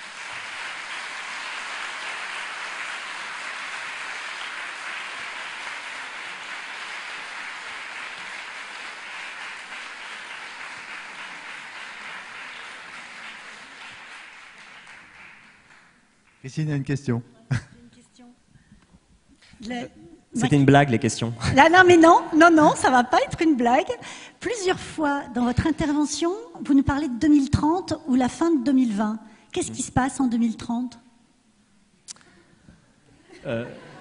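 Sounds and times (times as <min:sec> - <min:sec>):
audience applauding: 0:00.0 - 0:16.7.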